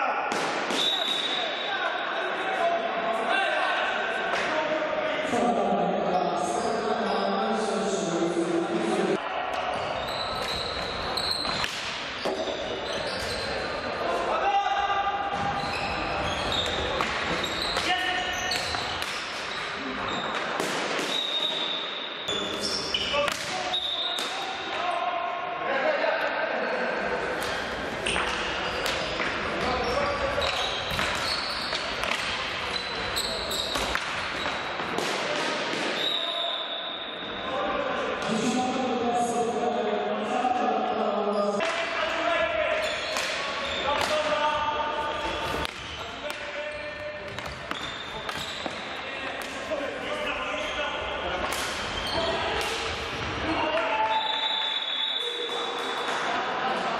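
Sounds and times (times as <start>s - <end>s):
short high squeaks: 10.0s - 11.7s, 30.4s - 31.9s
hockey sticks and ball knocking: 11.3s - 13.4s, 16.5s - 19.7s, 27.4s - 32.8s, 33.5s - 36.1s, 43.0s - 44.4s, 45.2s - 49.6s.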